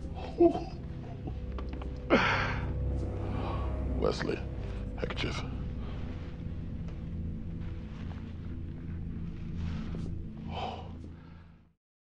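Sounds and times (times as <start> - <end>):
low droning film score: 0.0 - 11.8.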